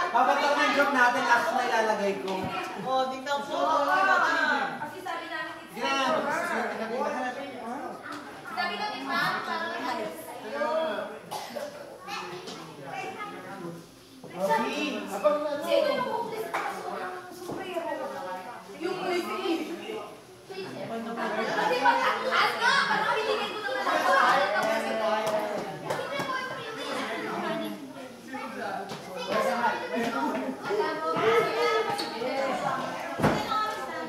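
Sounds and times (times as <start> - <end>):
indistinct chatter of voices: 0.0 - 34.0.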